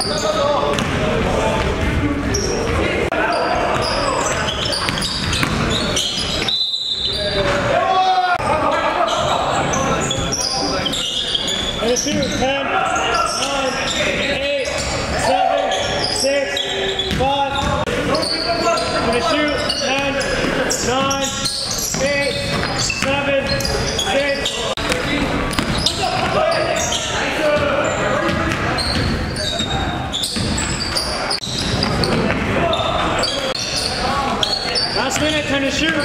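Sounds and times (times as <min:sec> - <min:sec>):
players shouting: 0:00.0 - 0:36.0
basketball dribbling: 0:00.6 - 0:02.9, 0:03.6 - 0:06.5, 0:17.0 - 0:18.4, 0:19.1 - 0:32.6.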